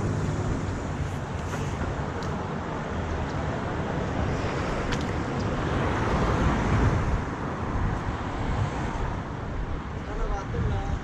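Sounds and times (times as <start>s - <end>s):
wind on camera microphone: 4.0s - 11.0s.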